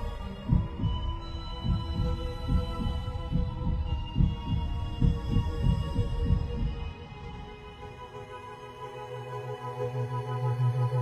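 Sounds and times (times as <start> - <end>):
heartbeat thumps: 0.0 - 7.0.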